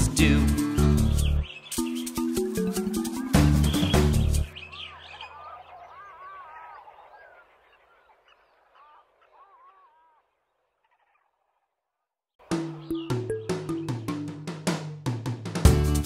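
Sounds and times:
birds chirping: 0:00.0 - 0:14.8.

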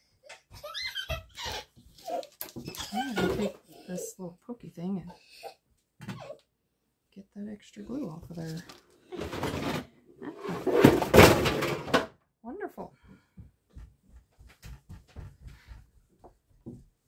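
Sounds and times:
crash and clatter of falling things: 0:08.6 - 0:12.2.

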